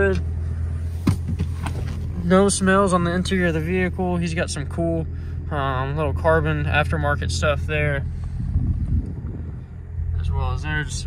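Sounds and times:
phone handling rumble: 0.0s - 2.3s.

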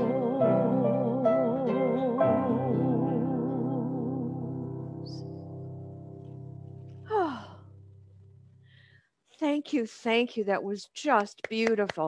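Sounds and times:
person sighing: 7.0s - 7.8s.

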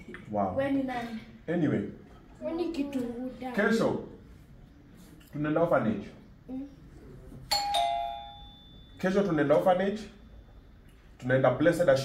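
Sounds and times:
two-note ding-dong chime: 7.5s - 9.0s.

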